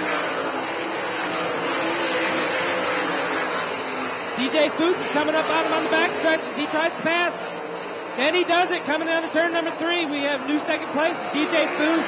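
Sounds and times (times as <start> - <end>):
racing car engines: 0.0 - 12.0.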